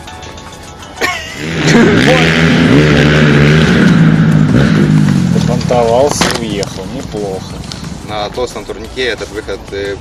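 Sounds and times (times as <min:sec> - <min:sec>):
dirt bike engine running: 0:01.4 - 0:08.4.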